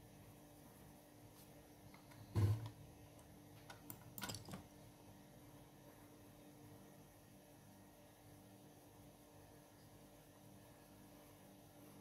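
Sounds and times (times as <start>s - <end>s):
faint steady hum: 0.0s - 12.0s
soft thump on desk: 2.3s - 2.7s.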